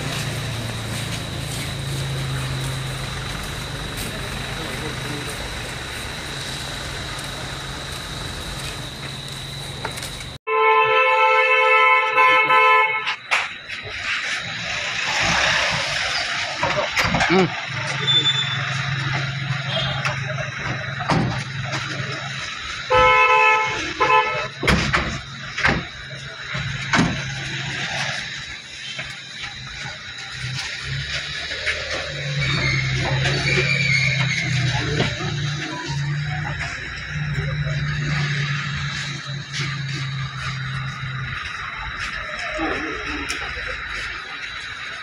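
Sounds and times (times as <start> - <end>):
indistinct voices: 0.0 - 10.4, 13.1 - 23.0, 23.6 - 45.0
low engine-like hum: 0.0 - 10.4, 25.0 - 45.0
car horn honking: 10.5 - 13.2, 22.9 - 24.7.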